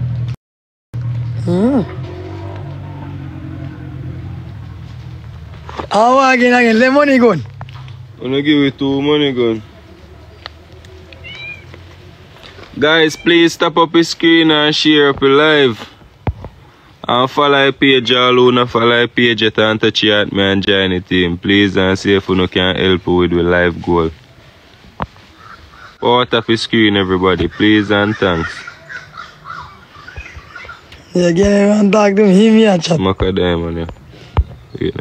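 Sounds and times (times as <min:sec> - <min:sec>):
distant bird calls: 0:01.3 - 0:20.1, 0:21.5 - 0:35.0
high animal call: 0:01.4 - 0:04.9, 0:11.1 - 0:11.8, 0:12.8 - 0:13.6, 0:25.3 - 0:31.3.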